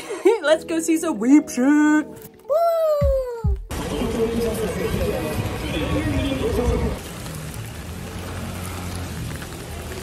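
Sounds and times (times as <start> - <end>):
traffic: 3.7 - 10.0
rain hiss: 6.9 - 10.0.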